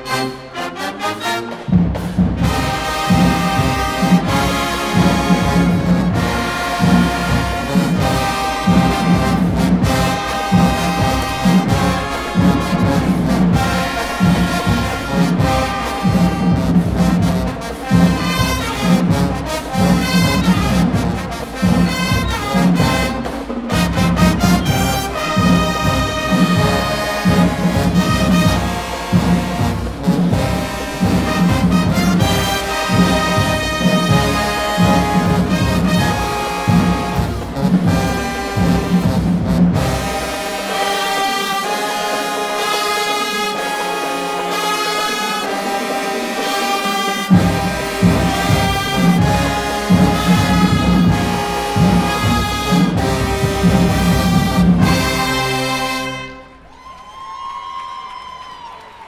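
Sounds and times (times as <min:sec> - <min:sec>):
marching band playing: 0:00.0 - 0:59.0.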